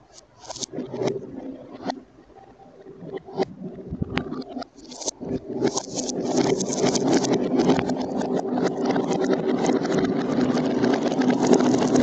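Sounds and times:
marbles rolling on a track: 4.8s - 12.0s.

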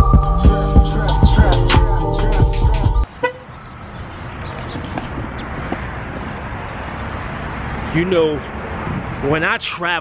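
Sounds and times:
hip hop beat: 0.0s - 3.1s.

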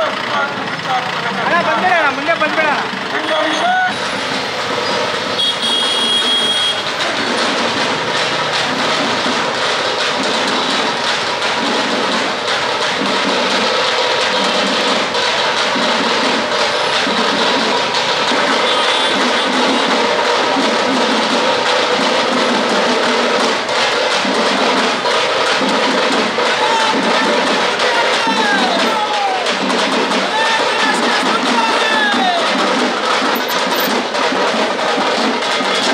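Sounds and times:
crowd noise: 0.0s - 35.9s.

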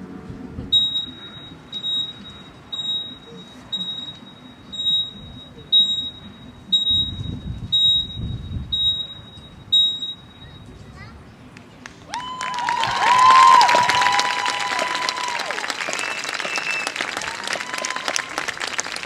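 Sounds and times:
heart monitor beeps: 0.7s - 10.8s.

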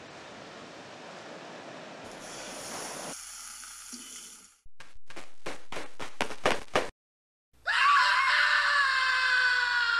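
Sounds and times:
person screaming: 7.6s - 9.9s.

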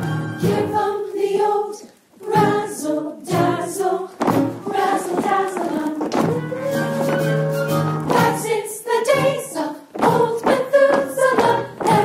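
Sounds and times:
ensemble singing in chorus: 0.0s - 6.3s, 8.1s - 12.0s.

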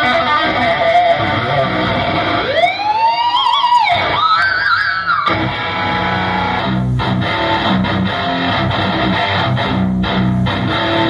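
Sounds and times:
electric guitar with vibrato: 0.0s - 11.0s.

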